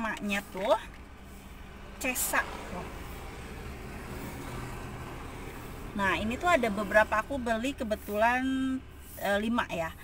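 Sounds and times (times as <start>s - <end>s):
traffic rumble inside car: 0.0s - 10.0s.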